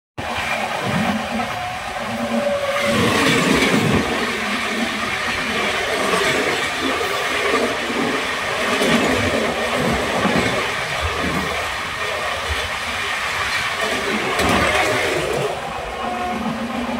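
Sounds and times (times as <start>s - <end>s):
moving train running noise: 0.2s - 16.9s
passing train rushing by: 0.2s - 16.9s.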